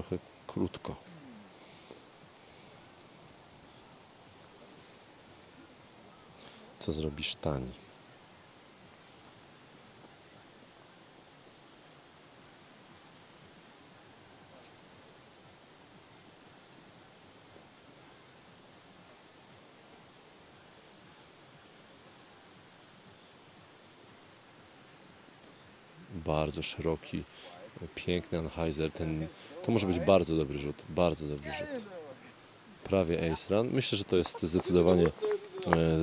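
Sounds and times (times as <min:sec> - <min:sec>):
faint outdoor ambience hiss: 0:00.0 - 0:36.0.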